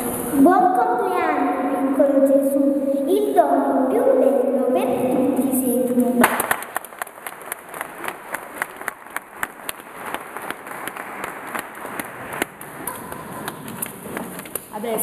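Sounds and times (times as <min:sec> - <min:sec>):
audience clapping: 0:06.2 - 0:14.8.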